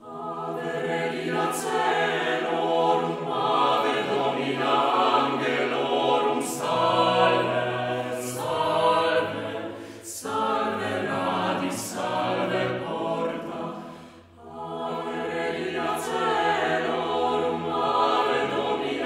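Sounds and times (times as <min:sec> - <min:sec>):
choir singing a cappella: 0:00.0 - 0:19.0.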